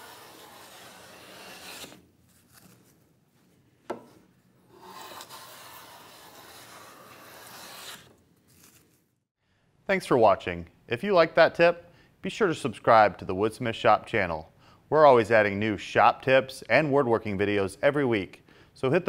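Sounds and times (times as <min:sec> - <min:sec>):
hand plane shaving wood: 0:00.0 - 0:02.0, 0:04.7 - 0:08.1.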